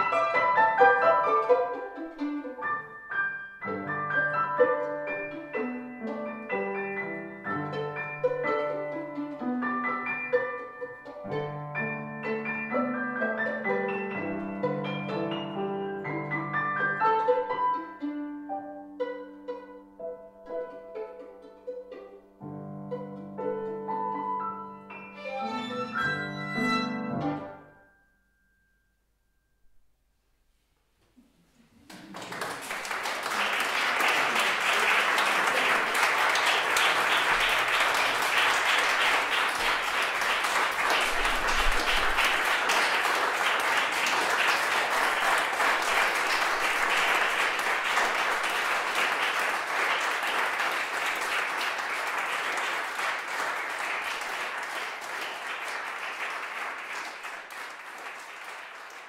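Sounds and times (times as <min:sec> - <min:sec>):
audience applauding: 0:31.8 - 0:59.0.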